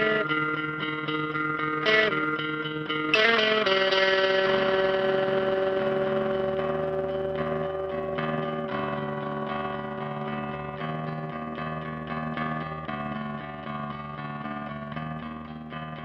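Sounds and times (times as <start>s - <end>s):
low-tuned guitar notes ringing: 0.0s - 16.0s.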